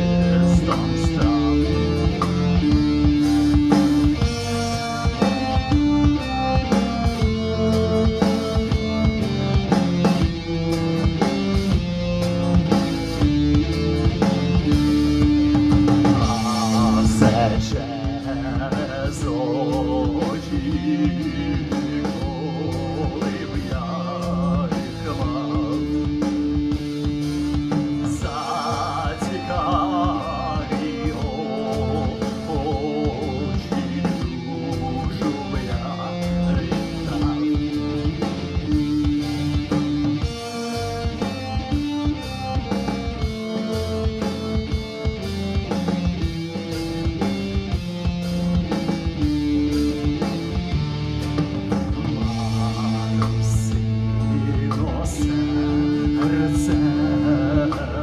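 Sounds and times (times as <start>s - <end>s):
electric guitar melody: 0.0s - 58.0s
steady drum beat: 0.0s - 58.0s.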